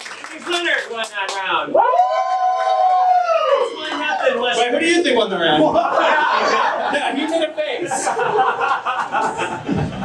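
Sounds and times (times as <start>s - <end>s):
person whooping high-pitched: 1.7s - 3.8s.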